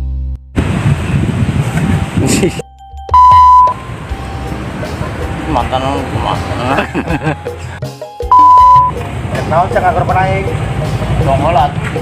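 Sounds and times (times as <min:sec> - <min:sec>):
ringing low music chord: 0:02.7 - 0:04.8, 0:08.3 - 0:09.0
censor bleep: 0:03.1 - 0:03.9, 0:08.3 - 0:08.9.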